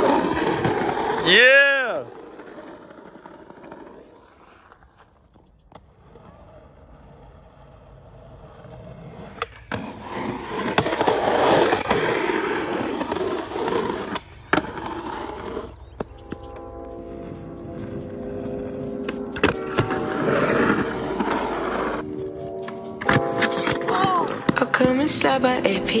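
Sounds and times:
skateboard clacks: 0.0s - 16.7s, 17.8s - 22.0s, 22.6s - 26.0s
skateboard wheels rolling on concrete: 0.0s - 26.0s.

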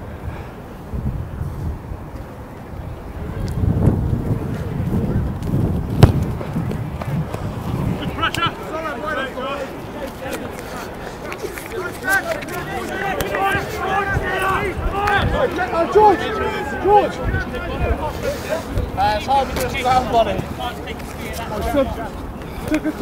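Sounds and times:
wind rumble on microphone: 0.0s - 8.7s, 13.5s - 15.6s
players shouting and calling: 5.9s - 23.0s
sharp thump: 6.0s - 6.5s.

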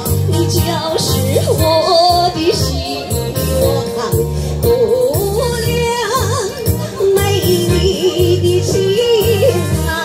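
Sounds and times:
keyboard melody with vibrato: 0.0s - 10.0s
rhythmic bass and beat: 0.0s - 10.0s.

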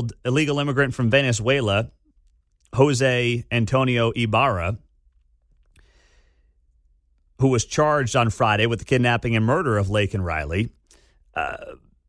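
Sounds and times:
faint breath: 5.7s - 6.7s, 10.8s - 11.3s.

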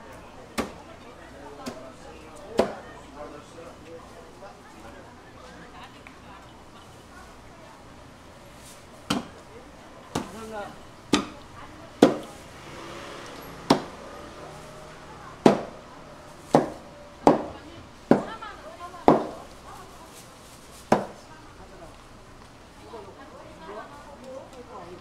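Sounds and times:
cleaver chopping into cutting board: 13.7s - 13.9s.

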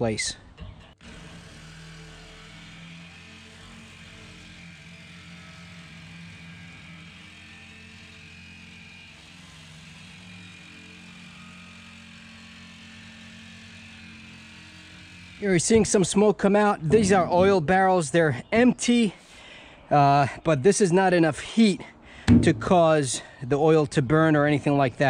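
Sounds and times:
reciprocating saw cutting steel: 0.8s - 17.7s.

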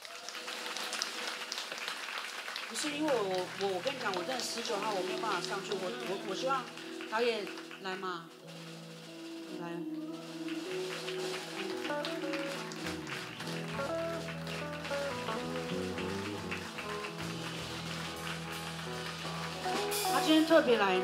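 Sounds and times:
band playing sustained chords: 3.4s - 21.0s
bass line: 12.9s - 20.4s.

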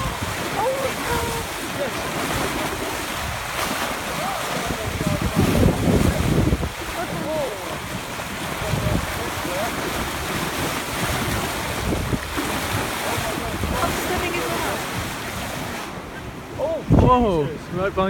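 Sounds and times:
water rushing along hull: 0.0s - 18.0s
wind buffeting microphone: 0.0s - 18.0s.

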